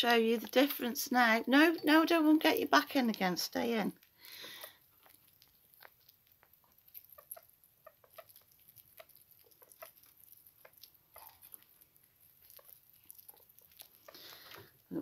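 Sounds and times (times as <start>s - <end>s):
small animals crunching food: 0.0s - 15.0s.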